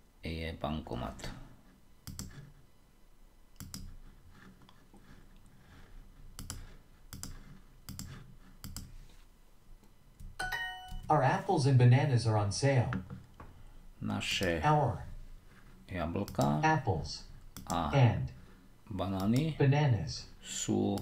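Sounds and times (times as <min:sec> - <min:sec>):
bright multi-tone chime: 0:10.4 - 0:11.1.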